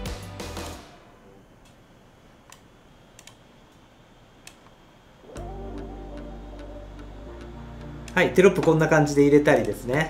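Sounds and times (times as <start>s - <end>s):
background music with ticking beat: 0.0s - 0.8s, 5.4s - 10.0s.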